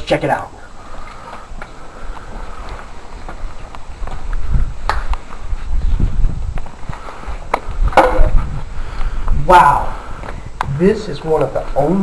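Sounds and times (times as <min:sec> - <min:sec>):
footsteps on bare rock: 0:00.8 - 0:09.4.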